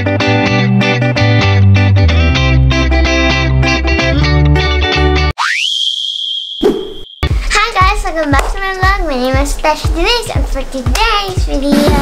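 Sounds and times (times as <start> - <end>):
guitar music: 0.0 - 5.3
rising tone sweep: 5.4 - 7.3.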